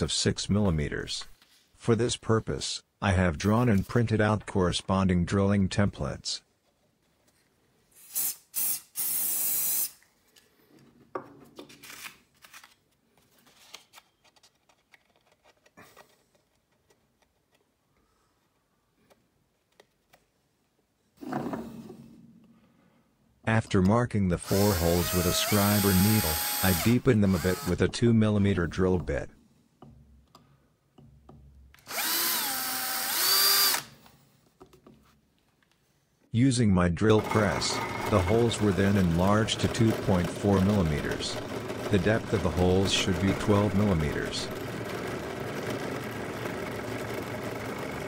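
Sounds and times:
electric drill whining: 0:24.4 - 0:27.8, 0:31.8 - 0:34.0, 0:37.2 - 0:47.6.

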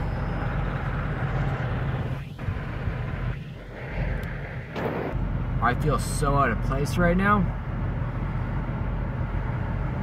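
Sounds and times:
van engine rumbling: 0:00.0 - 0:10.0
rushing noise: 0:01.2 - 0:05.2.

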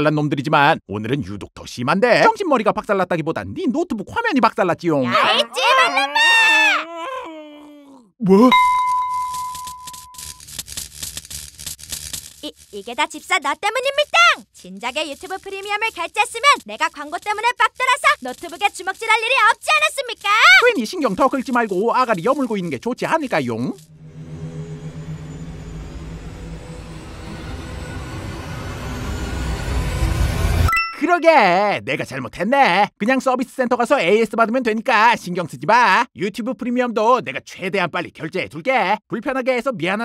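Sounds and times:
high electronic tone: 0:08.4 - 0:10.4, 0:23.8 - 0:31.0
electrical crackling: 0:09.1 - 0:23.9
low rumbling drone: 0:23.8 - 0:30.7.

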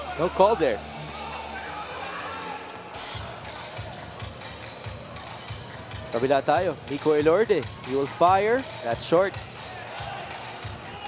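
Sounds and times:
arena crowd din: 0:00.0 - 0:11.0.

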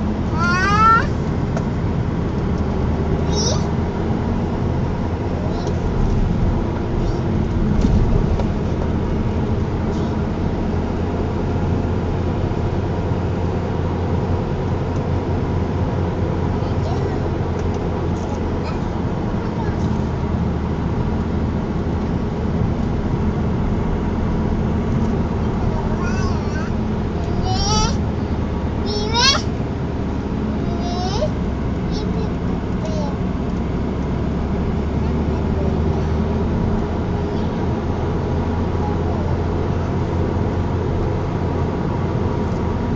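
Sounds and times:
car engine and tyre hum: 0:00.0 - 0:42.9.

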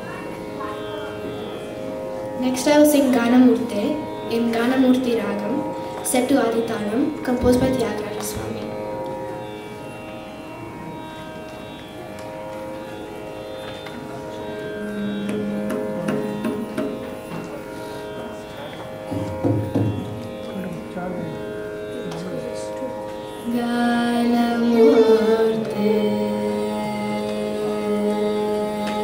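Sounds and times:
steady drone: 0:00.0 - 0:29.0
violin playing gliding phrases: 0:00.0 - 0:29.0
person singing: 0:23.4 - 0:29.0.

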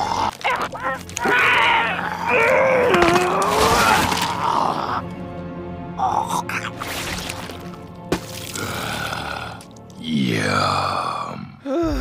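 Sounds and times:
strained grunting cry of pain: 0:00.0 - 0:05.1.

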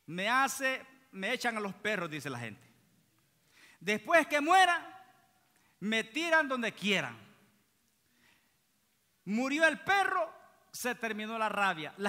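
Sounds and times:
man speaking: 0:00.0 - 0:02.7, 0:03.8 - 0:07.4, 0:09.2 - 0:12.0.

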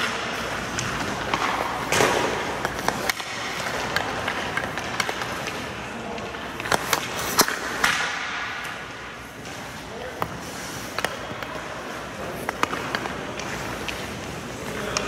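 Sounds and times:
hockey stick hitting puck: 0:00.0 - 0:15.0
skate blades scraping ice: 0:00.0 - 0:15.0.

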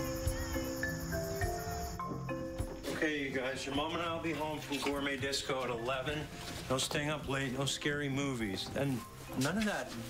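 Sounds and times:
crickets chirping: 0:00.0 - 0:06.8.

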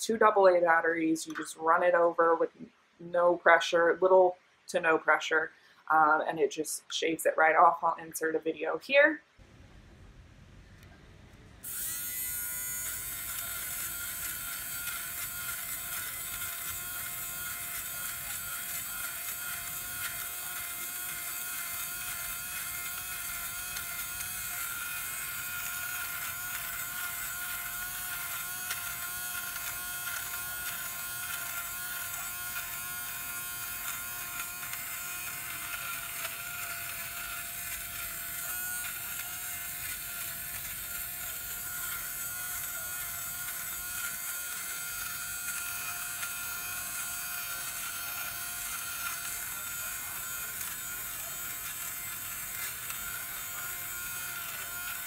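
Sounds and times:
fabric shaver whining: 0:11.6 - 0:55.0.

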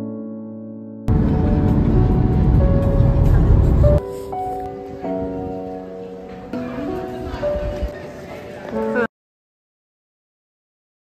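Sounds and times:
background music: 0:00.0 - 0:09.1
road noise inside moving vehicle: 0:01.1 - 0:04.0.

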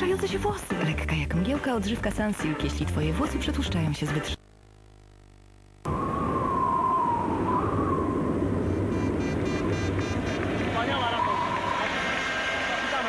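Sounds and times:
low steady hum: 0:03.7 - 0:11.8
faint wavering whistle: 0:05.9 - 0:10.4, 0:11.0 - 0:11.9
rushing outdoor noise: 0:05.9 - 0:13.0.

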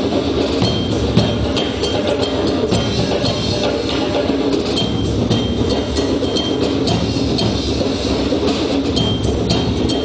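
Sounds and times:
bass drums and hand drums: 0:00.0 - 0:10.0
sharp high ringing strikes: 0:00.6 - 0:08.1.

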